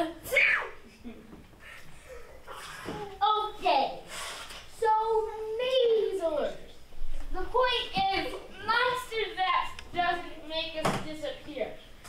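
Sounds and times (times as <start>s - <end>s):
child's loud exclamation: 0.2s - 0.8s.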